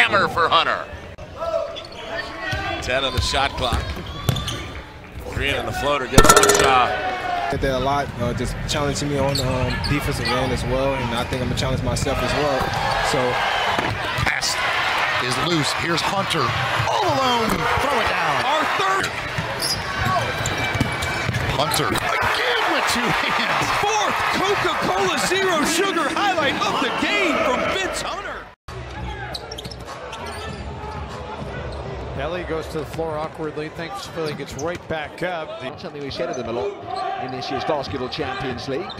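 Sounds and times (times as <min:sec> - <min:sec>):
arena crowd noise: 0:00.0 - 0:38.9.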